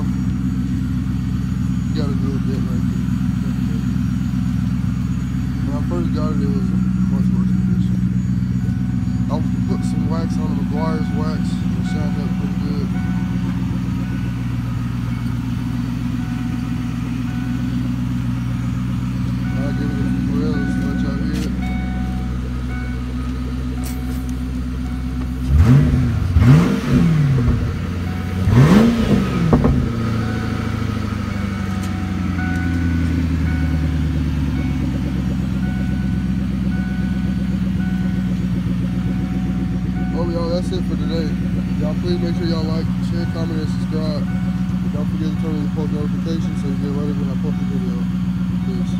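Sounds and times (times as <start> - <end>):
car engine idling and revving: 0.0 - 48.9.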